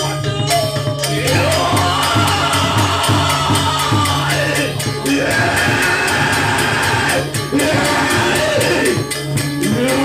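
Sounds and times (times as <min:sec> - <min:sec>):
gamelan playing loudly: 0:00.0 - 0:10.0.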